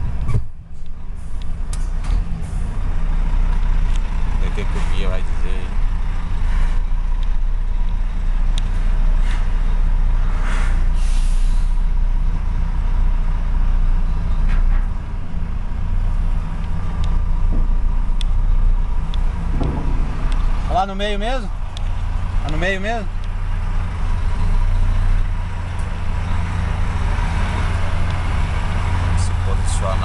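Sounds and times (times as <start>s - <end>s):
truck diesel engine running: 0.0s - 30.0s
air brake hisses: 10.3s - 11.8s.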